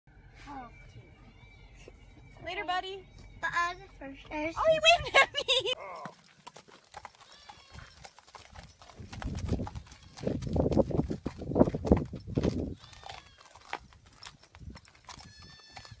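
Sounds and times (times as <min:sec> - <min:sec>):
faint high-pitched calls: 0:00.2 - 0:04.1
hooves thudding on sand: 0:04.2 - 0:16.0.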